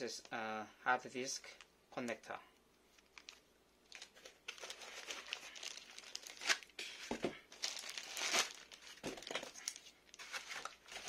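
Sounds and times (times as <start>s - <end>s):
plastic sleeve crinkling: 2.9s - 11.0s.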